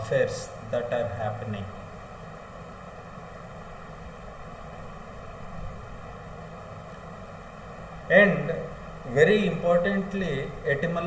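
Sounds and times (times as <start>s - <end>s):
faint even hum: 0.0s - 11.0s
steady background hiss: 0.0s - 11.0s.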